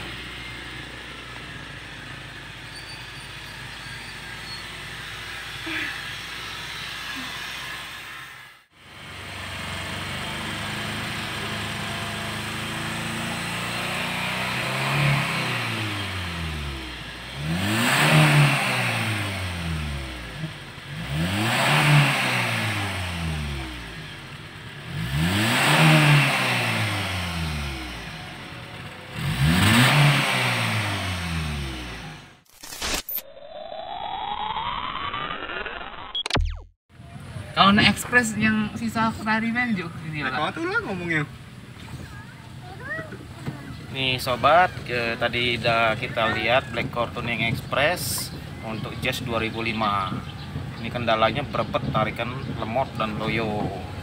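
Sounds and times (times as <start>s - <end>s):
car engine idling and revving: 0.0s - 54.0s.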